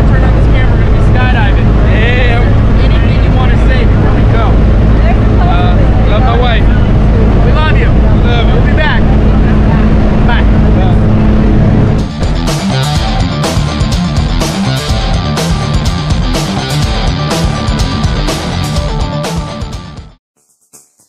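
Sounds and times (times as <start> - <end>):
people talking: 0.0 - 11.2
plane engine drone: 0.0 - 19.5
rock guitar music: 9.0 - 20.2.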